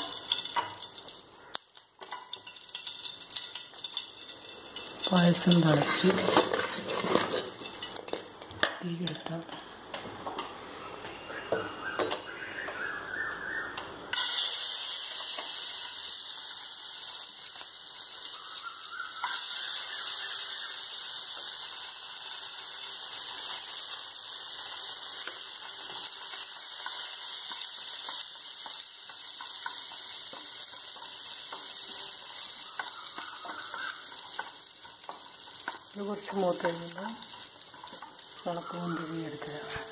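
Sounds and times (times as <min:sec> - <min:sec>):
nuts sizzling in a pan: 0:00.0 - 0:09.1, 0:14.1 - 0:39.9.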